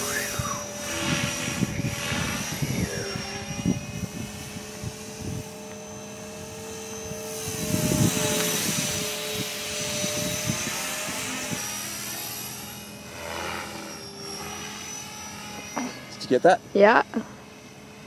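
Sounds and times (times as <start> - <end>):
rc helicopter rotor whine: 0.0 - 18.0.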